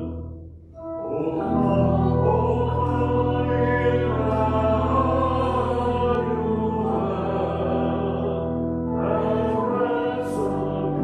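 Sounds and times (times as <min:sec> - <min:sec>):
low organ bass note: 0:00.0 - 0:08.4
organ chords: 0:00.0 - 0:11.0.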